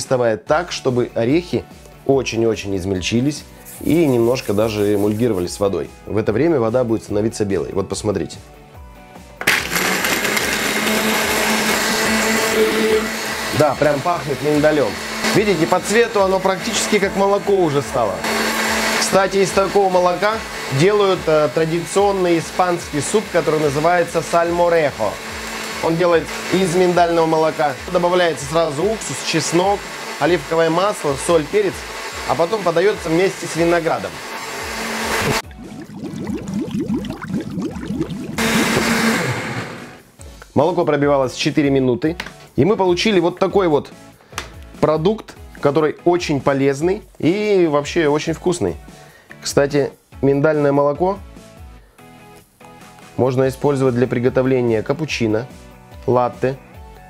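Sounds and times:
blender running: 9.4s - 40.1s
liquid gurgling churn: 35.2s - 39.3s.

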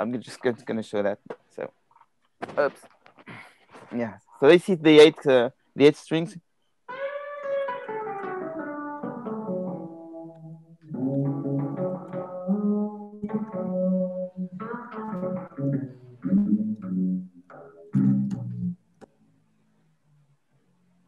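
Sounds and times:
plucked guitar notes: 6.9s - 18.8s.

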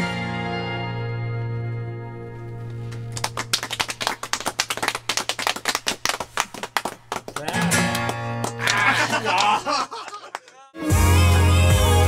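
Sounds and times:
acoustic guitar: 0.0s - 3.4s, 7.5s - 9.0s.

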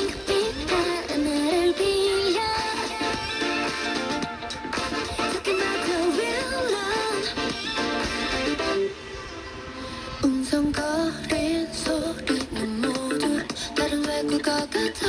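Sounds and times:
pop song on small radio: 0.0s - 15.0s.

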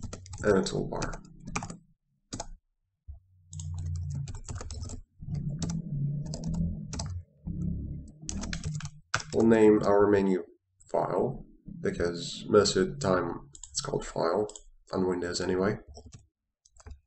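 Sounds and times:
typing on computer keyboard: 0.0s - 2.6s, 3.5s - 7.2s, 8.2s - 9.5s, 13.5s - 14.7s, 15.9s - 17.0s.

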